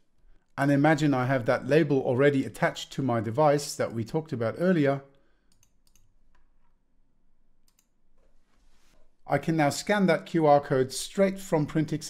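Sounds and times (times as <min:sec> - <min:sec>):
computer mouse clicks: 0:05.5 - 0:06.8, 0:07.6 - 0:08.3.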